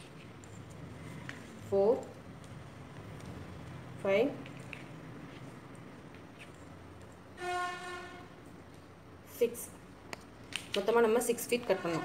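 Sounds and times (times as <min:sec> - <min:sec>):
faint room noise: 0:00.0 - 0:12.0
steady horn-like tone: 0:07.4 - 0:08.4, 0:11.6 - 0:12.0.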